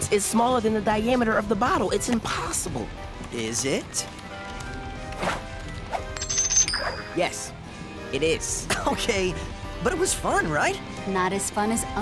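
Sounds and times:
light background music: 0:00.0 - 0:12.0
high ringing dings: 0:06.2 - 0:07.3.

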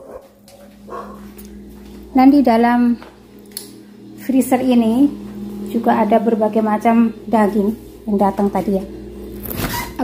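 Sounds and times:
dog barking: 0:00.0 - 0:01.3
steady low hum: 0:00.0 - 0:10.0.

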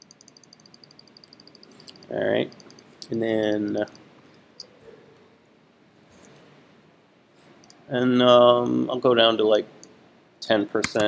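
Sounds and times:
computer mouse click: 0:00.0 - 0:04.0.

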